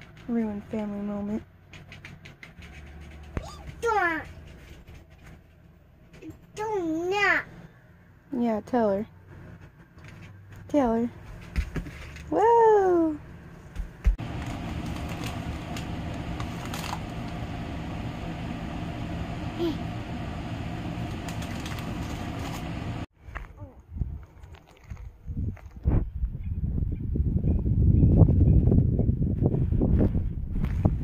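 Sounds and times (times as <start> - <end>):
toddler voice: 3.4 - 4.4, 6.2 - 7.6, 23.5 - 23.8
steady low hum: 13.0 - 23.1.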